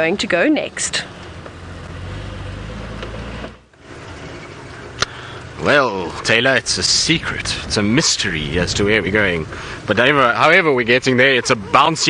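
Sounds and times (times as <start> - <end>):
vehicle engine running: 0.0 - 11.8
another vehicle driving: 0.0 - 12.0.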